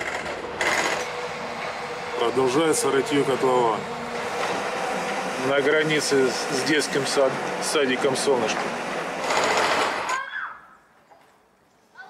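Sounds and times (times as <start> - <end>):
hydraulic breaker hammering: 0.0 - 10.2.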